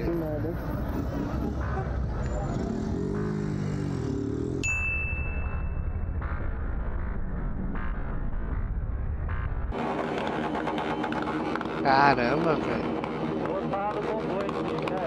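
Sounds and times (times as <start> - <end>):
traffic: 0.0 - 15.0
sharp electronic ding: 4.6 - 6.6
people's voices: 11.1 - 15.0.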